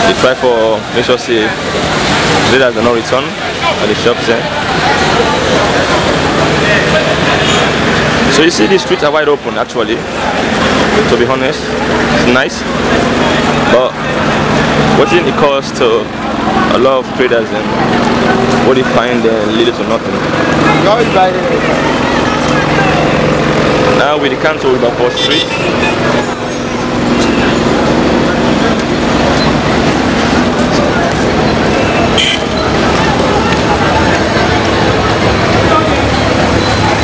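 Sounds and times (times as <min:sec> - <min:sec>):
crowd chatter: 0:00.0 - 0:37.0
traffic: 0:00.0 - 0:37.0
vehicle engine running: 0:00.0 - 0:37.0
voices of passers-by: 0:00.0 - 0:37.0.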